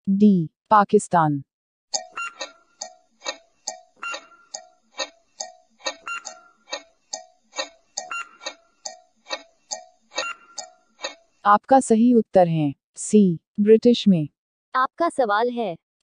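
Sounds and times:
clock ticking: 0:02.0 - 0:11.3.

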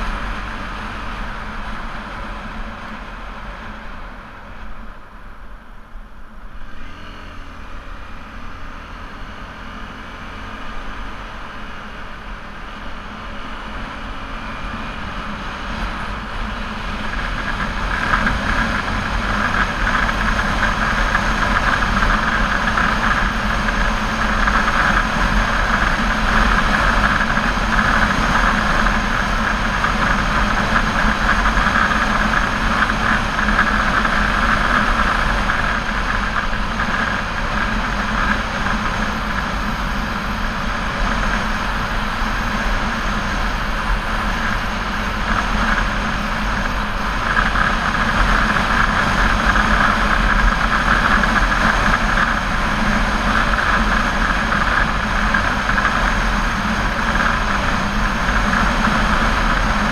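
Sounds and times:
motorcycle engine hum: 0:00.0 - 0:59.9
wind and road noise: 0:00.0 - 0:59.9.

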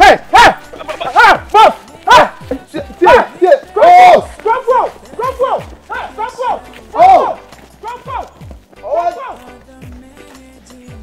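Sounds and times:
dog barking rapidly: 0:00.0 - 0:02.4.

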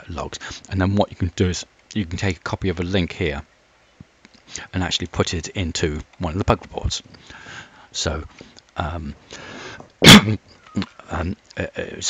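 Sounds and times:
short breath: 0:07.2 - 0:07.9, 0:09.3 - 0:09.9
man coughing loudly: 0:10.0 - 0:10.4.

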